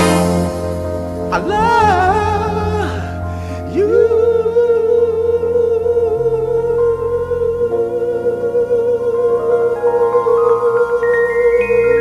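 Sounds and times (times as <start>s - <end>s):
sustained keyboard chords: 0.0s - 12.0s
man singing long high note: 1.2s - 11.8s.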